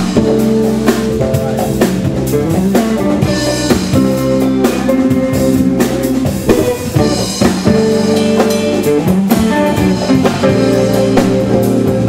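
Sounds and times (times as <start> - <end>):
bass: 0.0 - 12.0
congas: 0.0 - 12.0
drum kit: 0.0 - 12.0
electric guitar: 0.0 - 12.0
keyboards: 0.0 - 12.0.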